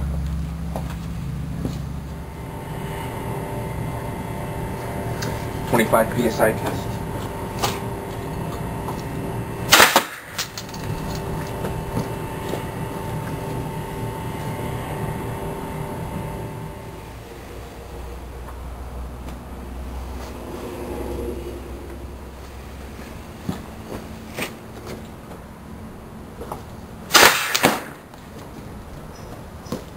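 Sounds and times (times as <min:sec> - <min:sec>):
steady background hum: 0:00.0 - 0:29.9
air gun blast: 0:09.7 - 0:10.4, 0:27.1 - 0:28.0.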